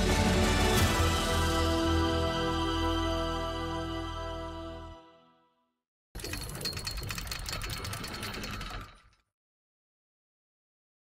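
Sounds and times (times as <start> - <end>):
fast mechanical clicking rattle: 6.2 - 9.2.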